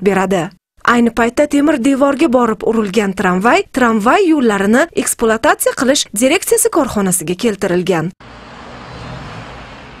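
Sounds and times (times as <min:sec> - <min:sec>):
traffic hum: 0:08.2 - 0:10.0.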